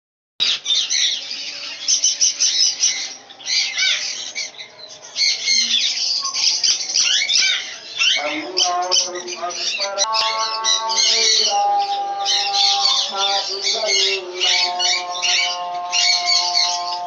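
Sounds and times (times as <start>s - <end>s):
sparrows chirping and calling: 0.4s - 17.0s.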